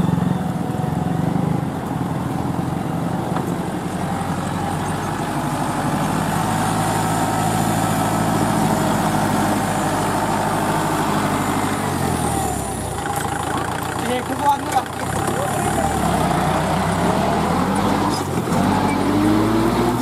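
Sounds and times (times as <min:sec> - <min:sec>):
tractor diesel engine running: 0:00.0 - 0:20.0.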